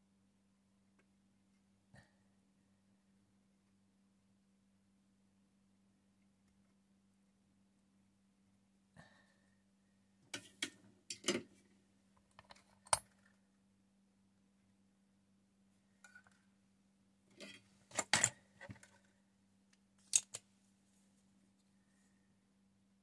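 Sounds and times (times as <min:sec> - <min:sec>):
faint steady hum: 0:00.0 - 0:23.0
plastic parts clicking and clattering: 0:17.4 - 0:19.1, 0:20.0 - 0:20.4.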